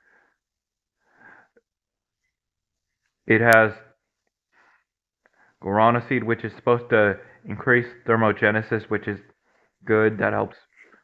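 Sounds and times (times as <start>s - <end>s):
faint breaths: 0.0s - 1.6s, 4.5s - 5.7s, 7.2s - 7.6s, 9.3s - 9.9s.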